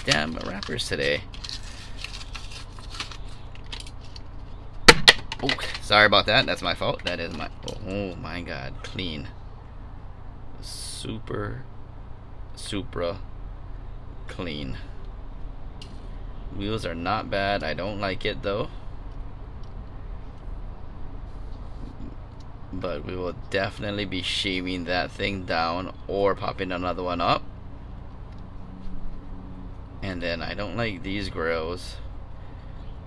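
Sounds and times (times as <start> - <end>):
cardboard wrapper crinkling: 0.0 - 4.5
low background hum: 0.0 - 33.0.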